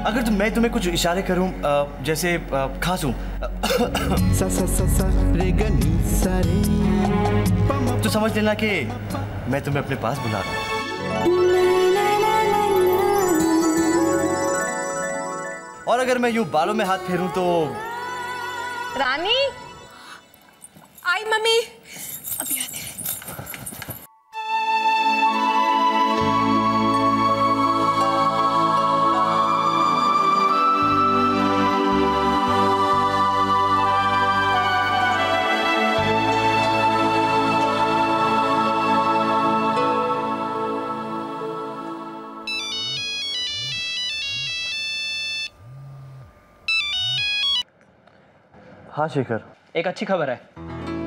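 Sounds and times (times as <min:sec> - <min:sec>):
mobile phone ringtone: 0:42.5 - 0:45.6, 0:46.7 - 0:47.6.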